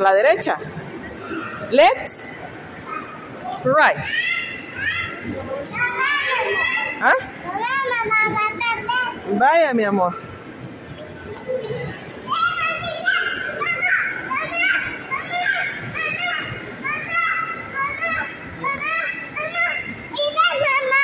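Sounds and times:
young children chattering and squealing: 0.0 - 21.0.

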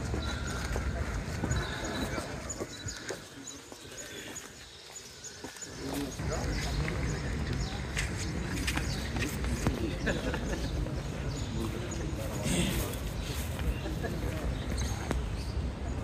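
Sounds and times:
hard-soled shoes on pavement: 0.0 - 15.6
low murmuring voices: 0.0 - 16.0.

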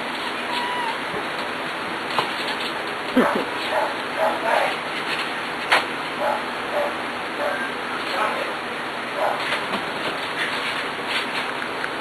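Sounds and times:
puppies yelping: 0.1 - 1.2.

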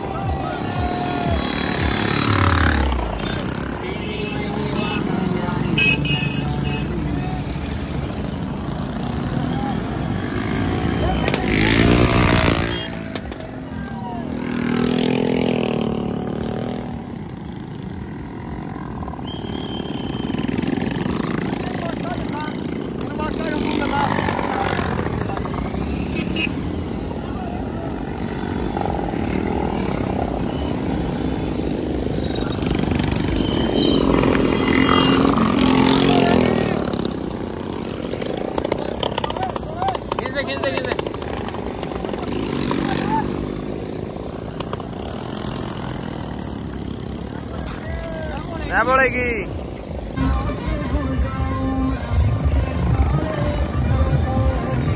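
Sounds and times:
people calling out: 0.0 - 2.4, 47.3 - 48.8
small motorcycles passing: 0.0 - 54.9.

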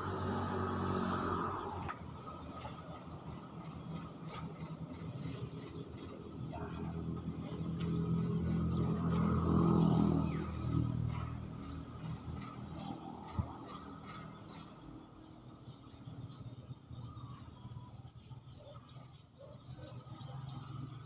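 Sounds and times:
vehicle engine passing: 0.0 - 3.6, 4.3 - 14.6.

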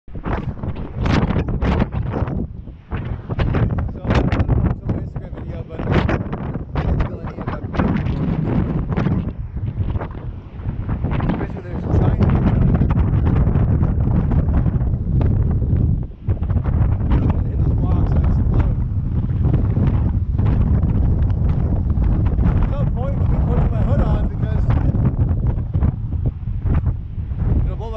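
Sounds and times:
wind buffeting microphone: 0.1 - 27.9
person's voice: 3.8 - 6.1, 6.8 - 8.5, 11.3 - 12.4, 17.1 - 18.8, 22.6 - 25.0, 27.6 - 27.9.

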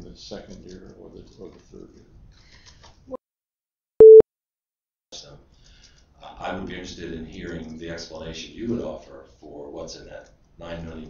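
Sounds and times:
short electronic beep: 4.0 - 4.2.

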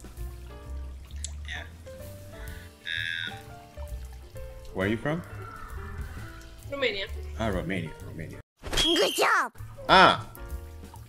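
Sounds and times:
background music with steady bass: 0.0 - 8.4, 9.6 - 11.0.

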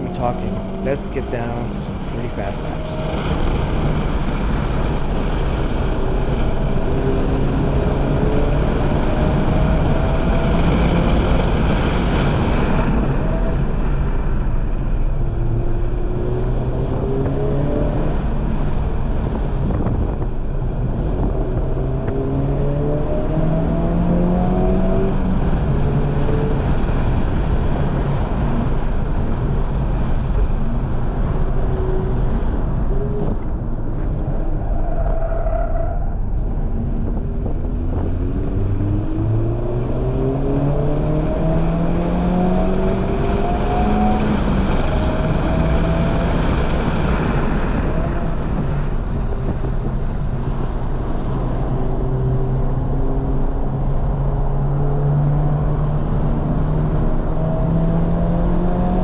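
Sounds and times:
car engine accelerating hard: 0.0 - 59.0
road and wind noise: 0.0 - 59.0.

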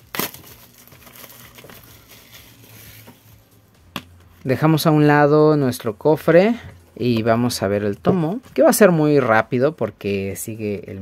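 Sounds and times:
plastic shrink-wrap crinkling: 0.0 - 3.1.

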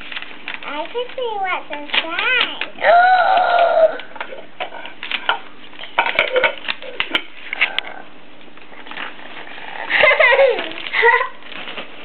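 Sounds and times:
wrapping paper crinkling: 0.0 - 4.2, 8.6 - 12.0.

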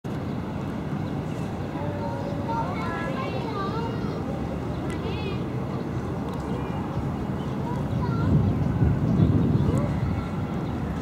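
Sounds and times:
distant voices talking: 0.8 - 11.0.

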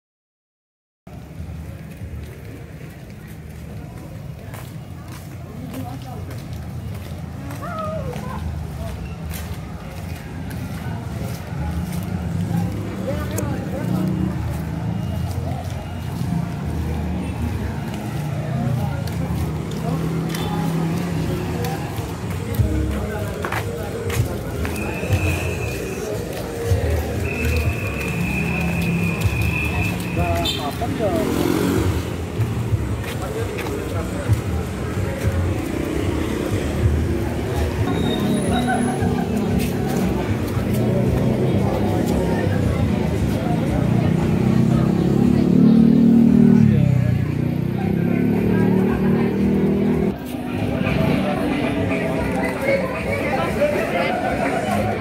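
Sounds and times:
motor traffic: 1.1 - 55.0
indistinct voices: 1.9 - 55.0.

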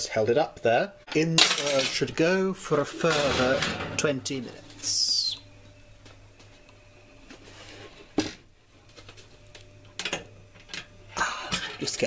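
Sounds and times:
low steady hum: 0.0 - 12.0
utensils clattering: 1.1 - 2.1.

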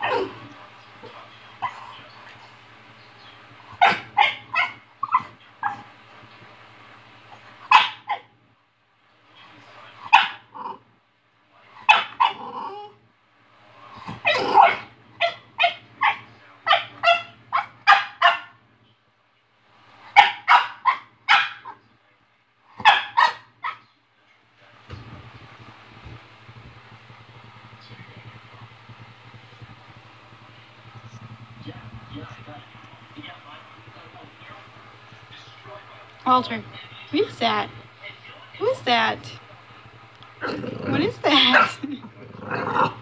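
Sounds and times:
dog barking: 3.7 - 5.9, 7.7 - 8.3, 10.1 - 10.5, 11.8 - 12.4, 14.2 - 18.6, 20.1 - 21.8, 22.8 - 23.9, 41.5 - 41.8.

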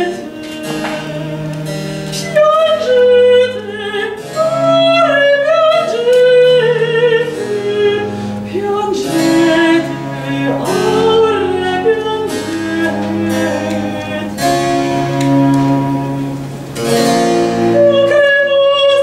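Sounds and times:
woman singing classical: 0.0 - 16.3, 17.2 - 19.0
bowed cello: 0.0 - 19.0.

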